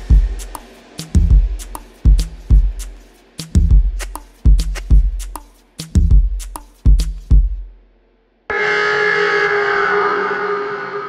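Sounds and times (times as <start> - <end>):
echoing sustained pitched tone: 8.5 - 11.0.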